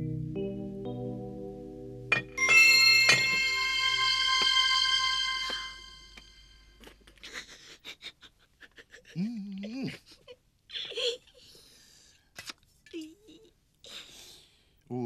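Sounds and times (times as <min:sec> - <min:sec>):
background music with held tones: 0:00.0 - 0:06.8.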